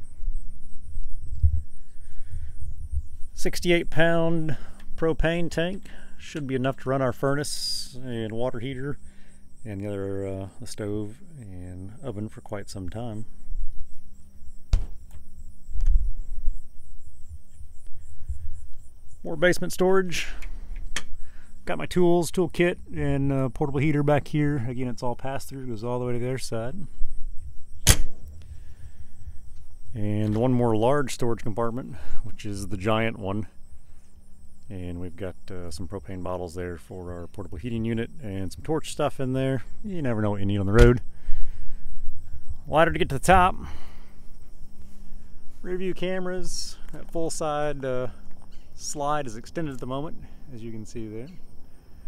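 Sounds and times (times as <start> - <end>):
microphone handling noise: 0.0 - 3.4, 13.3 - 18.9
wind rumble: 0.0 - 5.4, 13.2 - 21.7, 25.6 - 30.8, 41.0 - 46.8
heavy thump: 14.7 - 15.2.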